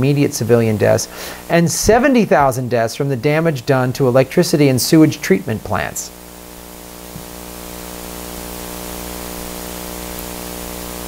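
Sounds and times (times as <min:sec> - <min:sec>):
low electrical hum: 0:00.0 - 0:11.0
steady hiss: 0:00.0 - 0:11.0.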